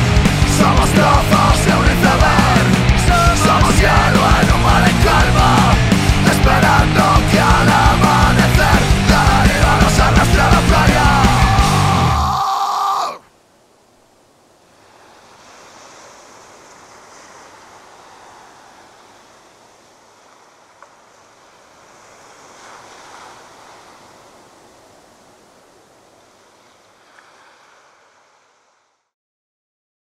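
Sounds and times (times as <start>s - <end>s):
ocean waves washing in: 0.0s - 29.1s.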